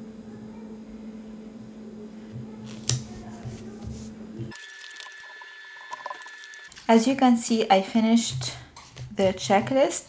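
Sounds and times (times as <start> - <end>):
low room hum: 0.0 - 9.9.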